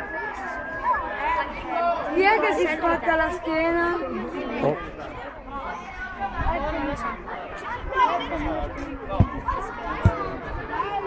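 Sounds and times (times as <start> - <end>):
boys chattering and calling out: 0.0 - 11.0.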